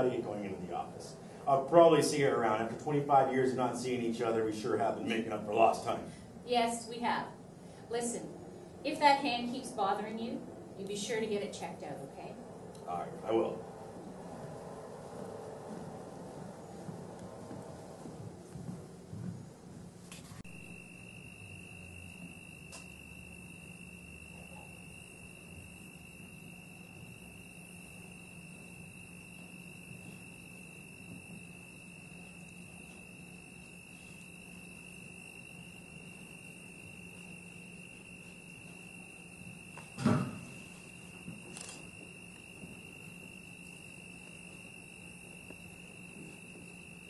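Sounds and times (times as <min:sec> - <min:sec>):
low hum: 0:00.0 - 0:47.0
steady high-pitched tone: 0:20.4 - 0:47.0.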